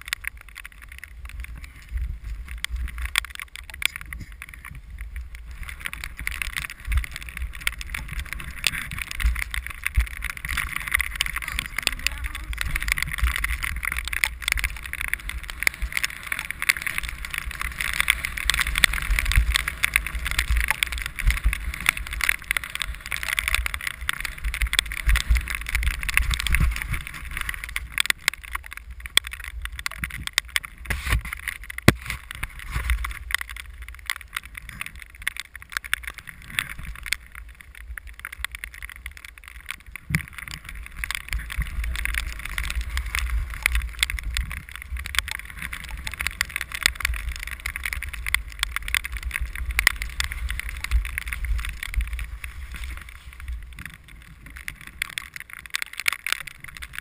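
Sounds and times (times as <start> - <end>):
skis sliding over snow: 0.0 - 57.0.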